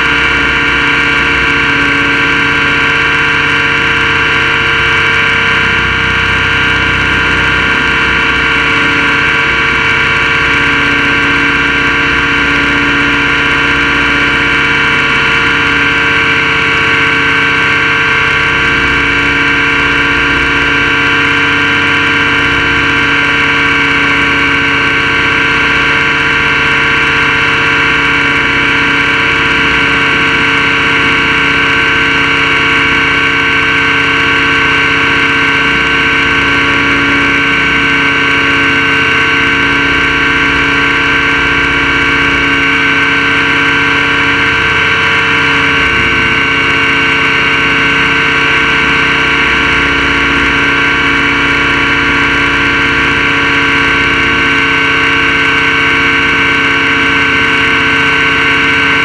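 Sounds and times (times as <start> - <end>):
rc helicopter rotor whine: 0.0 - 59.0.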